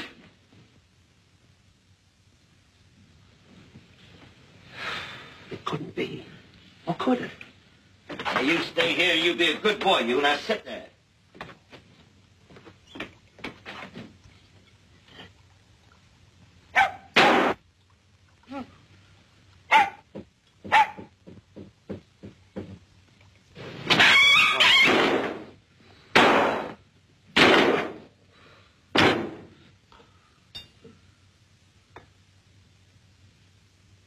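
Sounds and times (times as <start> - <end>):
harsh hissing noise: 0.0 - 15.3, 18.5 - 27.0
dog barking: 16.7 - 17.2, 19.7 - 20.1, 20.7 - 21.1
thuds and bangs: 17.2 - 17.6, 24.8 - 25.6, 26.2 - 26.8, 27.4 - 28.1, 28.9 - 29.6.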